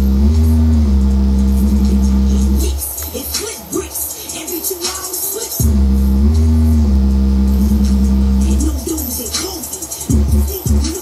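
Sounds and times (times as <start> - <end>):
deep held bass note: 0.0 - 2.7, 5.6 - 8.8
hip hop percussion: 0.0 - 11.0.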